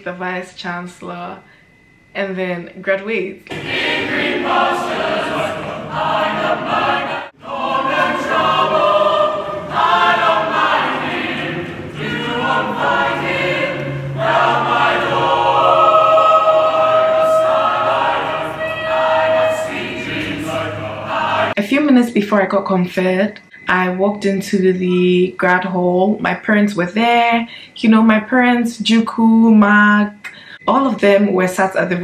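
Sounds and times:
choir singing: 3.5s - 21.6s.

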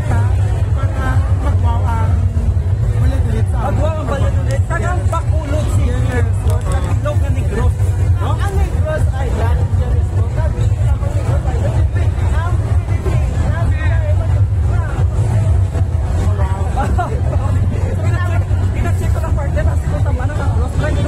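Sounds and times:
crowd chatter: 0.0s - 21.0s
loud music with heavy bass: 0.0s - 21.0s.

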